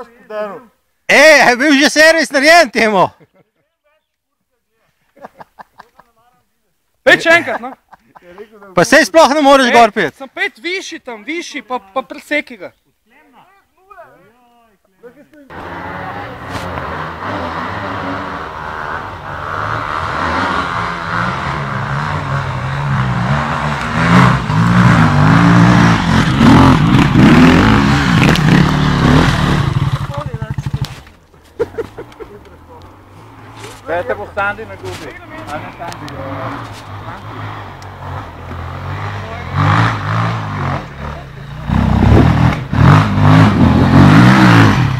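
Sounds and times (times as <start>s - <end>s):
motorcycle engine revving: 15.5s - 44.9s.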